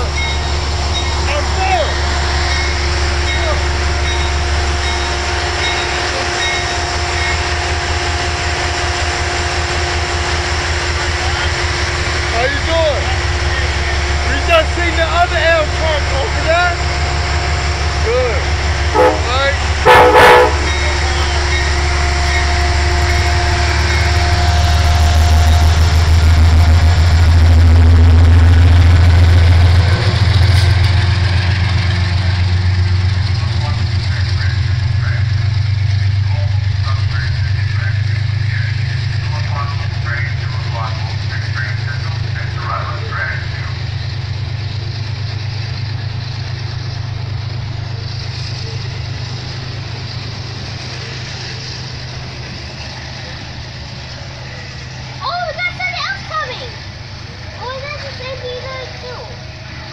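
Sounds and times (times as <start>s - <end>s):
diesel locomotive engine drone: 0.0s - 59.9s
passenger cars rolling by: 0.0s - 59.9s.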